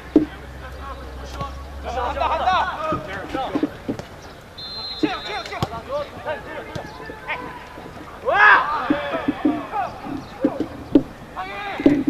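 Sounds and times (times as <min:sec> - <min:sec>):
players shouting calls: 0:00.0 - 0:12.0.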